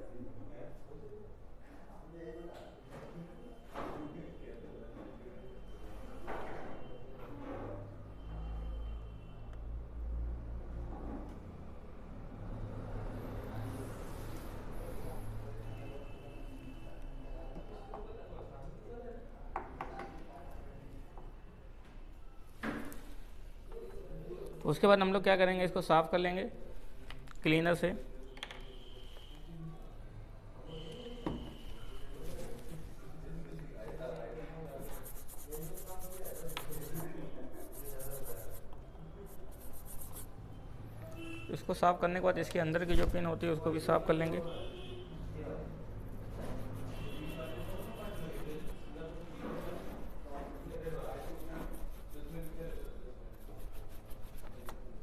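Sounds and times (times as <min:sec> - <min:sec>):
brush scrubbing circuit board: 0:34.8 - 0:38.7, 0:39.3 - 0:40.3, 0:46.3 - 0:54.6.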